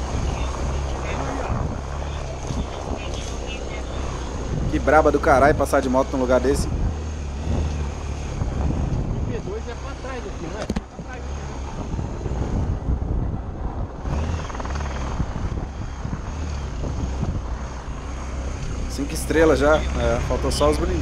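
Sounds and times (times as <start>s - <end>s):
motorcycle engine running: 0.0s - 21.0s.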